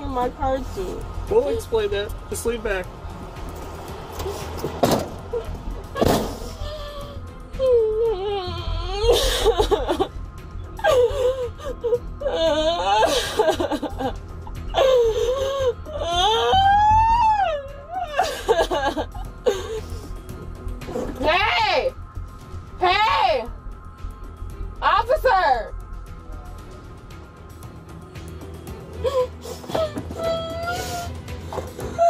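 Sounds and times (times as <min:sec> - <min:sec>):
background music: 0:00.0 - 0:32.0
woman crying in wailing sobs: 0:05.3 - 0:20.2, 0:28.9 - 0:32.0.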